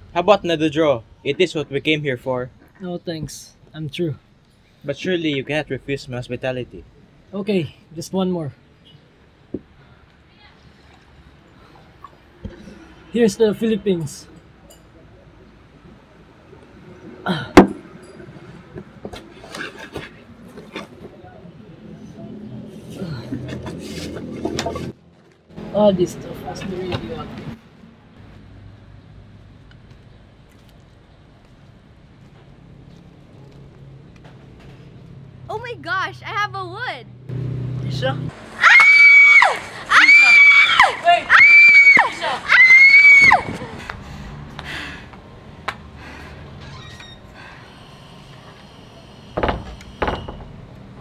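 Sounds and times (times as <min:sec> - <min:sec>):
young woman screaming: 0:38.6 - 0:43.5.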